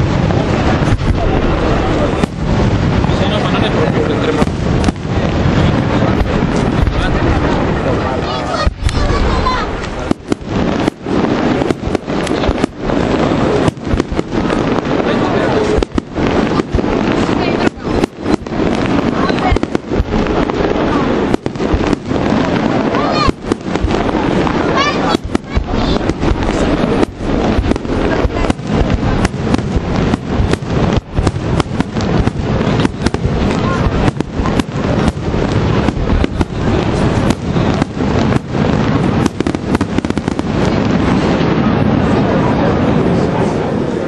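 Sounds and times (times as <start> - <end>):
sharp firework bangs: 0.0 - 43.8
firework bursts and crackling: 0.0 - 44.0.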